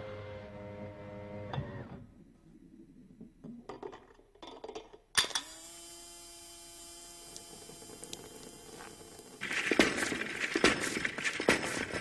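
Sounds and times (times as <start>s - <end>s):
parts clattering and tapping: 3.4s - 5.5s
small electric motor humming: 5.4s - 9.4s.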